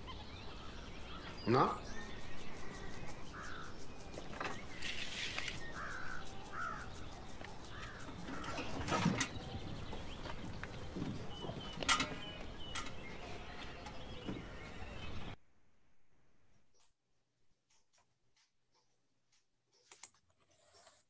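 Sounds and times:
crows cawing: 3.2s - 3.8s, 5.6s - 8.9s.

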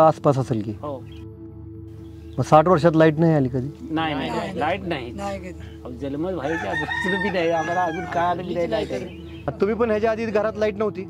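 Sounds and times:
man speaking: 2.4s - 11.0s
rooster crowing: 6.4s - 8.6s.

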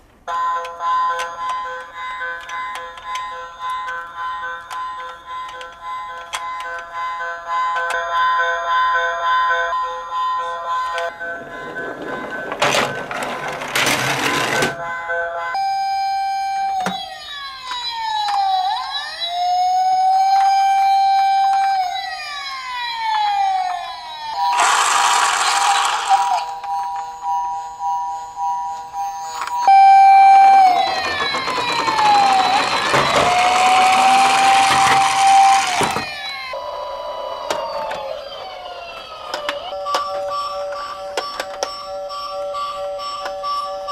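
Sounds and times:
toy police siren wailing: 15.5s - 26.9s, 29.3s - 43.9s.

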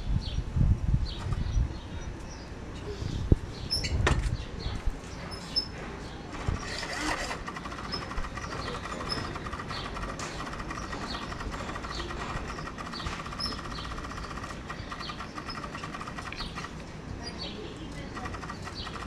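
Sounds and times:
small birds chirping: 1.0s - 19.0s
high-pitched fluttering buzz: 6.4s - 16.8s.

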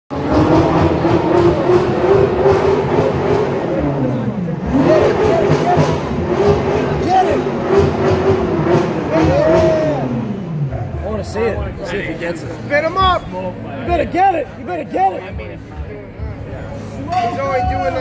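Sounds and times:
car engine revving: 0.1s - 13.3s
people shouting and whooping: 4.6s - 7.6s, 8.7s - 10.6s, 17.0s - 18.0s.

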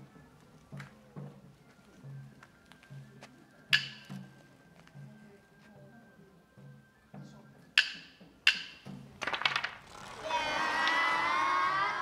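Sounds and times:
wooden staffs clacking: 3.8s - 4.1s, 7.8s - 11.1s
children shouting a long call: 9.8s - 12.0s.

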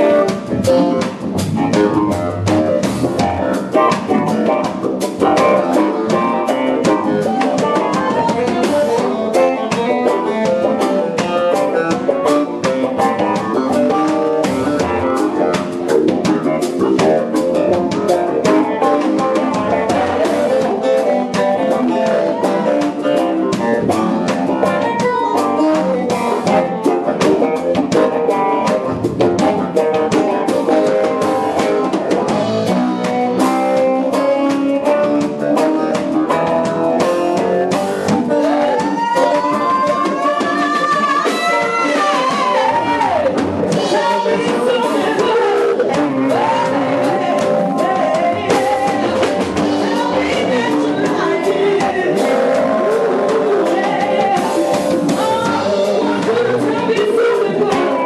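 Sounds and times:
electric guitar: 0.0s - 58.0s
funk band playing: 0.0s - 58.0s.

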